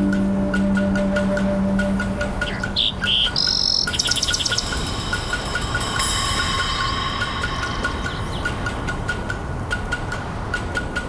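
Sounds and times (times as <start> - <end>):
held low note: 0.0 - 9.7
birdsong chirps and trills: 0.0 - 10.8
soft ticking: 0.0 - 11.0.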